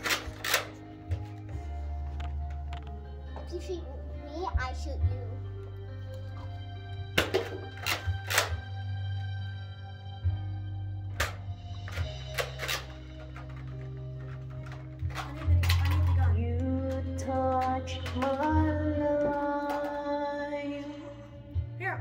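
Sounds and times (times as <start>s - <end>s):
karaoke backing track: 13.0s - 22.0s
woman singing into microphone: 16.3s - 21.2s.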